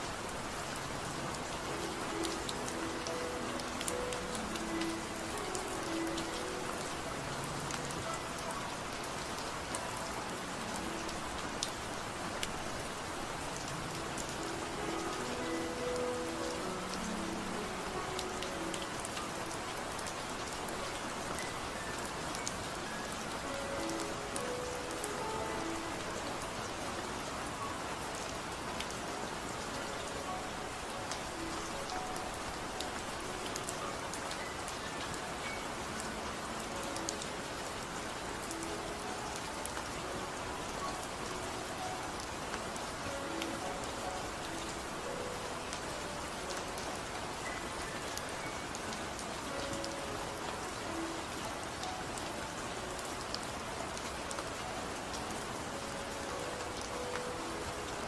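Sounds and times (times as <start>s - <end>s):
soft slow music: 0.0s - 58.0s
steady rain: 0.0s - 58.0s.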